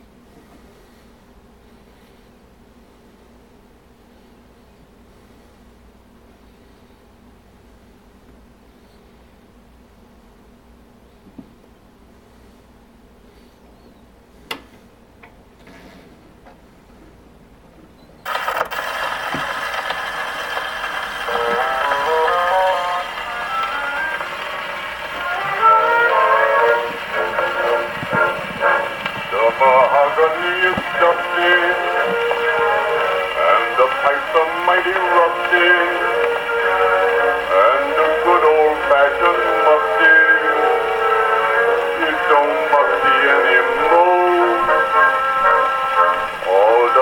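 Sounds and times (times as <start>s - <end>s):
record surface noise hiss: 0.0s - 47.0s
instrumental melody on a phonograph: 18.3s - 47.0s
person singing: 18.4s - 47.0s.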